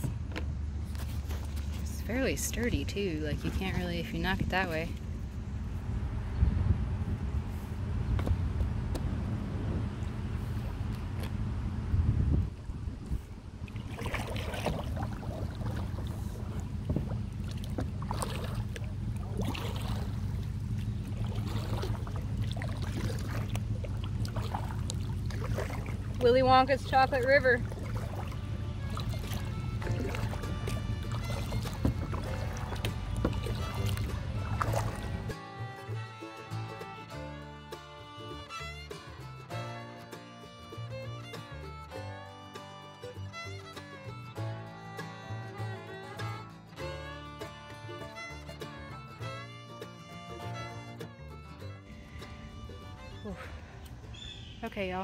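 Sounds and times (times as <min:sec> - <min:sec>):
wind rumbling on microphone: 0:00.0 - 0:35.4
water from kayak paddling: 0:00.0 - 0:39.9
instrumental music with steady beat: 0:28.4 - 0:53.2.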